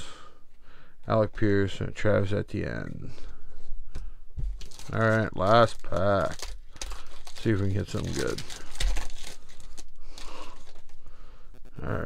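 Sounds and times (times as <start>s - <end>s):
foil wrapper crinkling: 4.5s - 11.1s.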